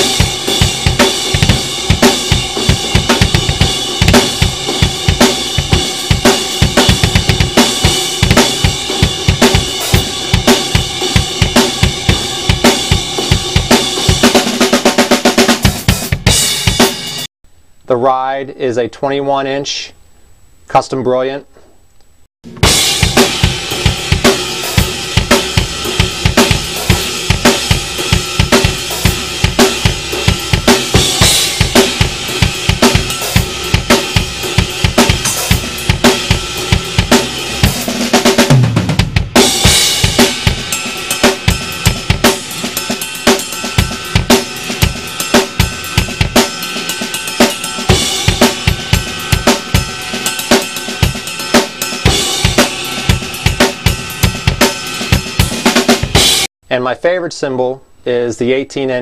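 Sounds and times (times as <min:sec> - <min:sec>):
drum kit rock groove: 0:00.0 - 0:17.3, 0:22.4 - 0:56.5.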